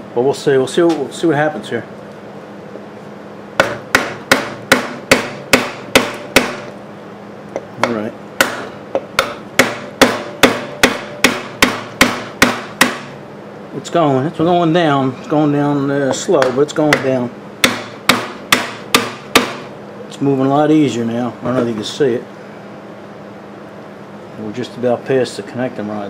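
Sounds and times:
hammer blows on wooden block: 3.6 - 6.7, 7.8 - 13.1, 16.4 - 19.7.

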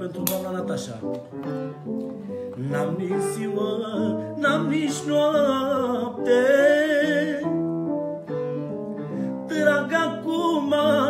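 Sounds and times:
man singing: 2.4 - 8.0, 9.2 - 11.0.

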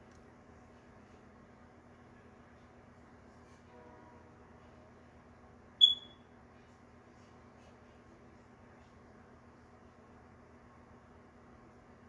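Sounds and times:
faint steady hum: 0.0 - 12.0
high-pitched electronic beep: 5.8 - 6.2.

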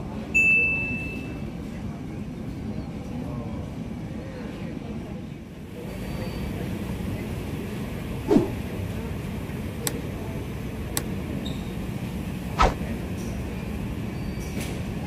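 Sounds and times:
passengers chattering: 0.0 - 15.0.

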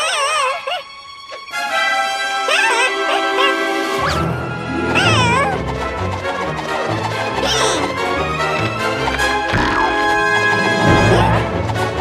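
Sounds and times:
cartoon creature cry: 0.0 - 0.8, 2.5 - 4.2, 4.9 - 5.6, 7.4 - 7.9
playful cartoon music: 0.0 - 12.0.

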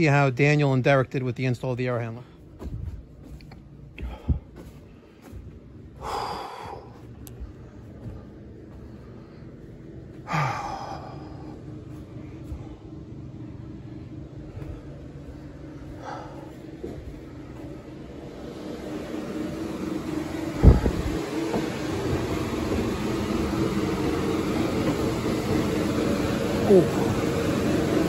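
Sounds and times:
blower fan humming: 0.0 - 28.0
footsteps on wooden stairs: 2.5 - 9.0.

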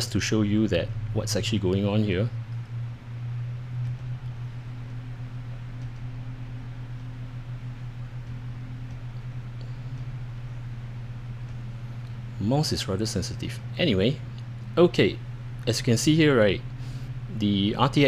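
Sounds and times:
computer fans humming: 0.0 - 18.0.

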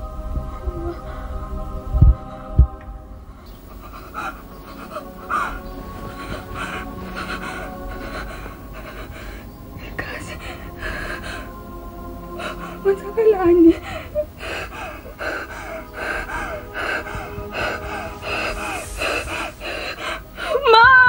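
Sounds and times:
background music: 0.0 - 21.0
woman crying out: 20.5 - 21.0.

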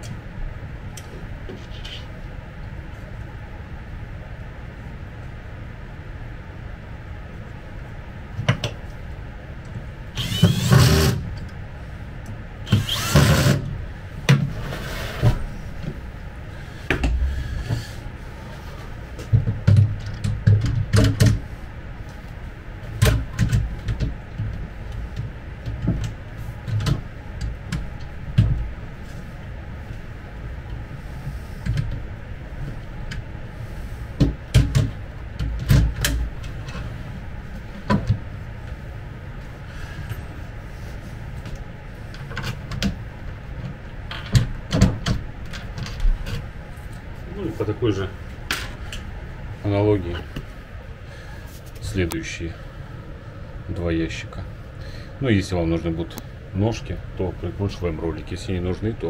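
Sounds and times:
knocks and clicks of furniture panels: 16.9 - 17.8, 19.2 - 21.4, 34.2 - 36.8.

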